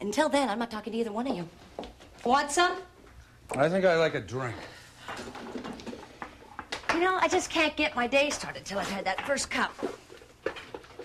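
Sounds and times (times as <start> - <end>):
kitchen items clicking and rustling: 5.0 - 11.0.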